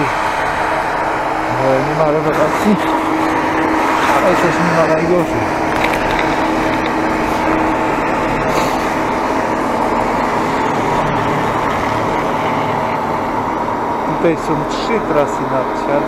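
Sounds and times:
snowmaking guns hissing: 0.0 - 5.7, 6.5 - 16.0
faint constant hum: 0.0 - 16.0.

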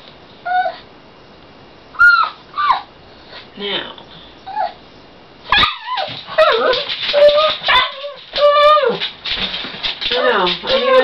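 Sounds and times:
dog whining and yipping: 0.4 - 0.8, 2.0 - 2.9, 4.5 - 4.8, 5.5 - 9.1, 10.1 - 11.0.

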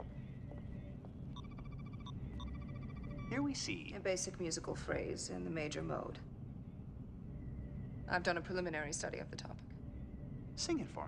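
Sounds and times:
low hum: 0.0 - 11.0
high electronic chirps: 1.4 - 3.4.

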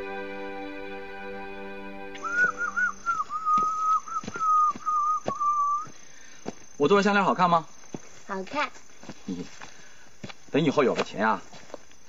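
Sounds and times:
soft soundtrack chords: 0.0 - 2.8
whistled tune: 0.0 - 5.9.

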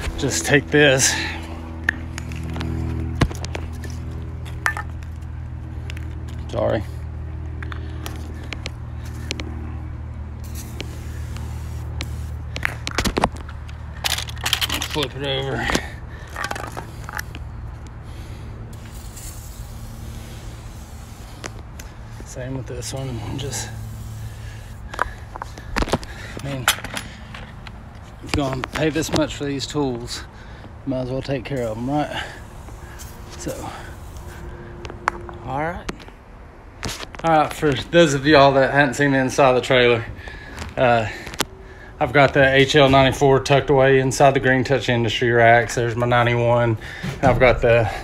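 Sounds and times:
lubricant spray hissing: 10.4 - 12.6, 18.2 - 22.0, 22.8 - 24.9.

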